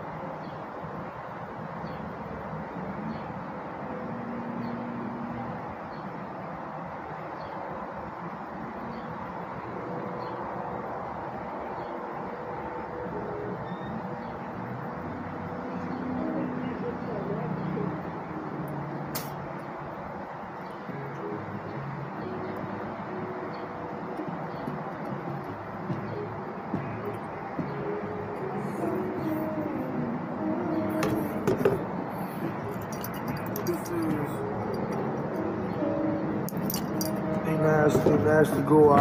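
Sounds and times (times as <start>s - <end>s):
vehicle running: 7.8s - 39.0s
background music with singing: 9.5s - 39.0s
metallic jingles and clinks: 32.6s - 35.5s, 36.5s - 39.0s.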